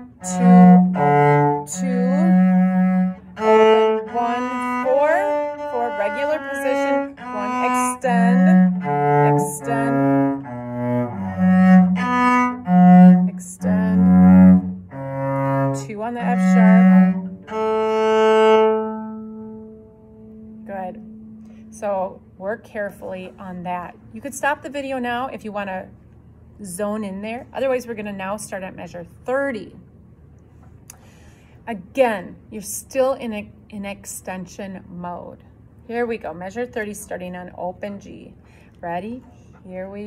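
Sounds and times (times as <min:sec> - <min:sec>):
cello bowed melody: 0:00.0 - 0:22.5.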